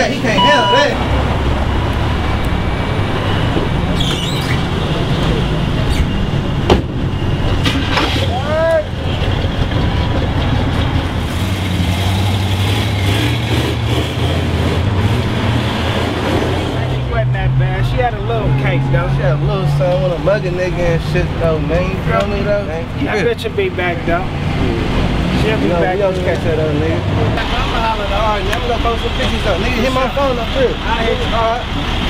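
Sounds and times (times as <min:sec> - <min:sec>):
car engine rumbling: 0:00.0 - 0:32.0
street traffic: 0:00.0 - 0:32.0
short pitched squeal: 0:03.2 - 0:04.9.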